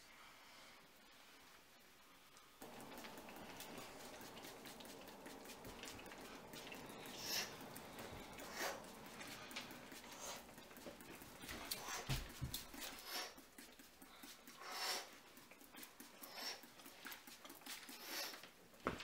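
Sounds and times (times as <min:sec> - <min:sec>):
quick deep breaths: 0:02.6 - 0:13.4
hand noises on skin and hair: 0:02.6 - 0:18.6.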